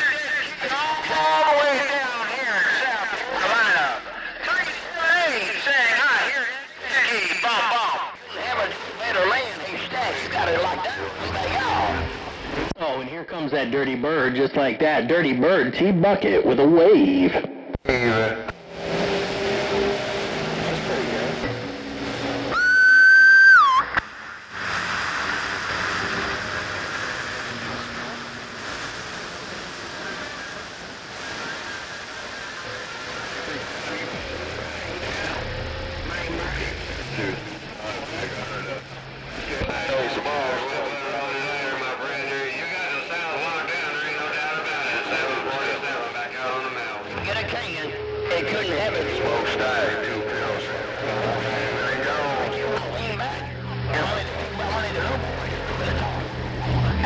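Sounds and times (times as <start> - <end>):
faint garbled radio voices: 0.0 - 18.6, 27.1 - 57.0
loud whistling tone: 22.5 - 24.0
radio static hiss: 23.9 - 57.0.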